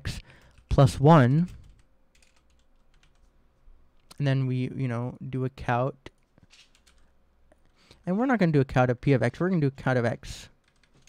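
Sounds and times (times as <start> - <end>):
faint keyboard typing: 0.2 - 0.8, 1.4 - 3.4, 6.1 - 8.0, 10.6 - 11.0.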